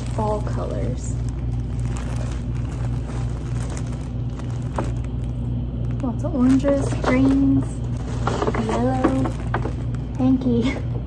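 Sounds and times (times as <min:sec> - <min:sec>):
low rumbling hum: 0:00.0 - 0:11.0
plastic wrap and paper crinkling: 0:00.0 - 0:11.0.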